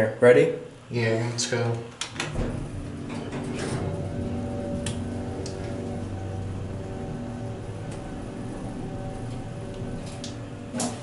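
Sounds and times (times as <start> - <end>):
elevator clicks and clunks: 2.0 - 11.0
hydraulic pump motor humming: 2.2 - 11.0.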